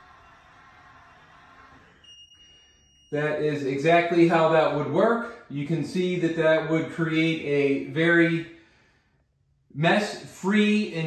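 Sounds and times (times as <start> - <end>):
steady high-pitched beep: 0.0 - 4.6.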